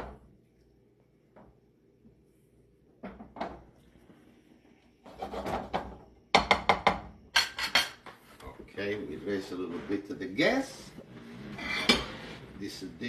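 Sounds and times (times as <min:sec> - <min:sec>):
utensils clattering against a pan: 0:07.4 - 0:08.0, 0:11.6 - 0:12.5
utensil scraping: 0:08.8 - 0:13.0.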